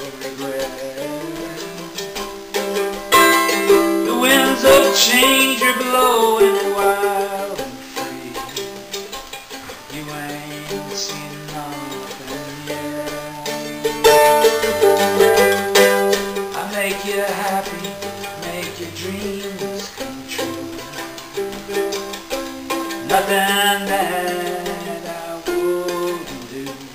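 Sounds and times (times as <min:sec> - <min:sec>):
mandolin strummed: 0:00.0 - 0:26.9.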